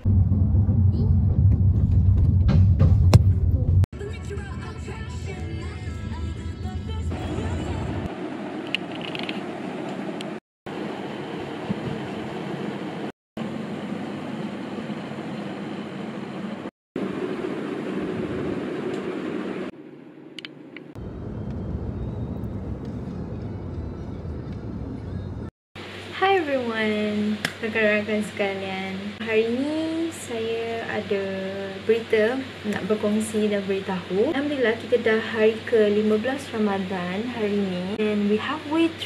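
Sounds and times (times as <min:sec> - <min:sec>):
low hum: 0:16.6 - 0:38.8.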